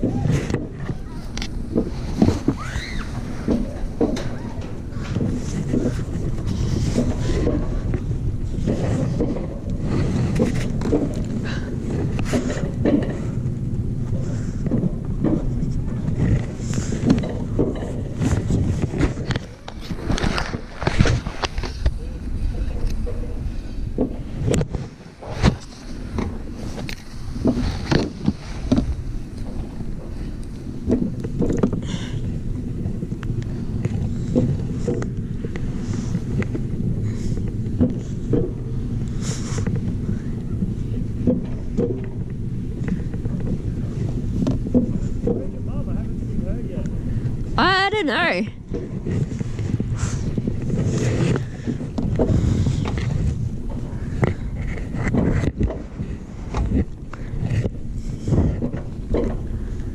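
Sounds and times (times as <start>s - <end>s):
sled wheels rumbling on rail: 0.0s - 47.6s, 48.4s - 59.9s
wind on microphone: 0.0s - 59.9s.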